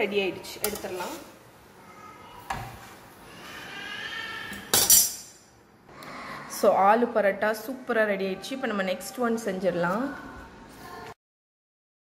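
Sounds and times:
utensils and dishes clinking: 4.5s - 5.6s.

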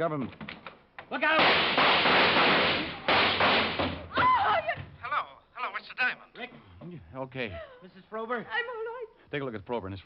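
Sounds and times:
gunshots: 1.3s - 4.0s.

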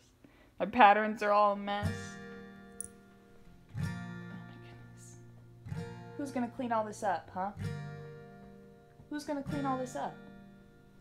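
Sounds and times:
acoustic guitar strumming: 1.6s - 11.0s.

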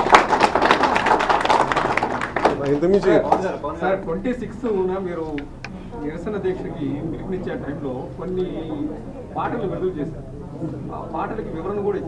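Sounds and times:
applause: 0.0s - 3.5s.

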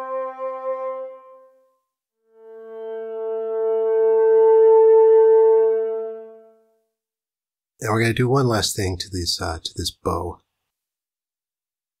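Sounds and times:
synthesized cello notes: 0.0s - 1.7s, 2.3s - 6.9s.

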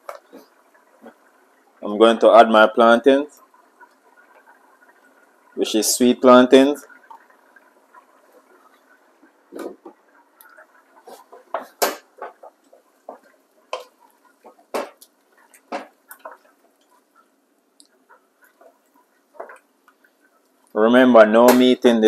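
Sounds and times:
spoon stirring stew in pot: 9.5s - 20.7s
spoon knocking metal pot: 14.5s - 15.0s, 15.6s - 16.3s.

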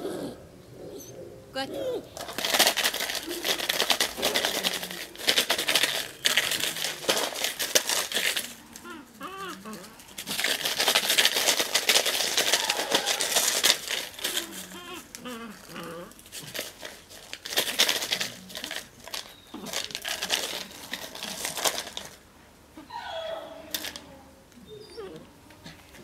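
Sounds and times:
plastic bottle crinkling: 2.1s - 22.2s, 23.7s - 24.0s.

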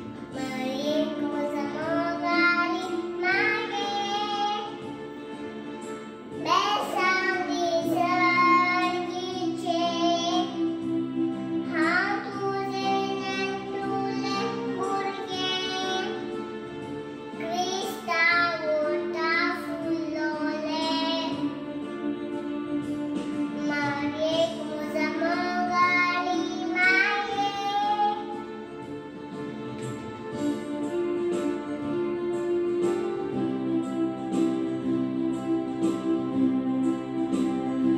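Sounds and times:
girl singing into a microphone: 0.3s - 4.8s, 6.4s - 10.6s, 11.6s - 16.3s, 17.4s - 21.5s, 23.6s - 28.4s.

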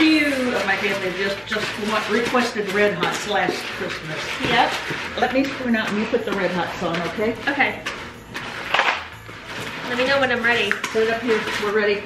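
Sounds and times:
wooden spoon stirring sticky mixture: 0.0s - 12.0s.

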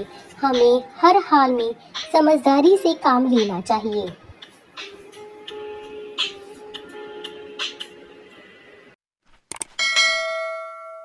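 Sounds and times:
bright bell ding: 9.8s - 11.0s.

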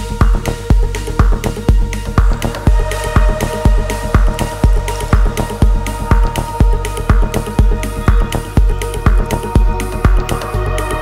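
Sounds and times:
deep house music: 0.0s - 11.0s.

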